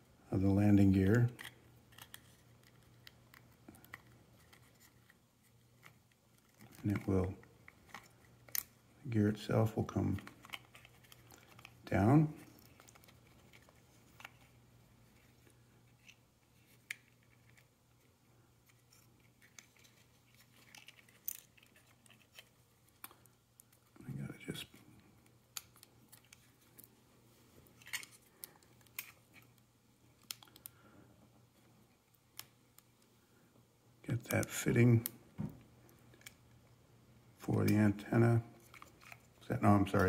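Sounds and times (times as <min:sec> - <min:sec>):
faint steady hum: 0:00.0 - 0:40.0.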